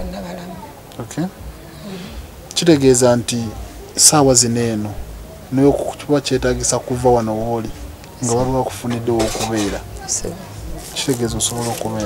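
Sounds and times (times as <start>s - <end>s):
woman talking: 0.0s - 0.8s.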